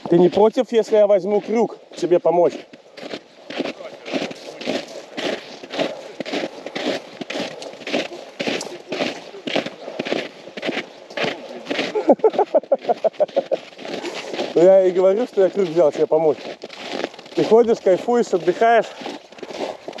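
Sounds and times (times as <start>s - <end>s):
boots crunching on snowy ice: 0.0s - 20.0s.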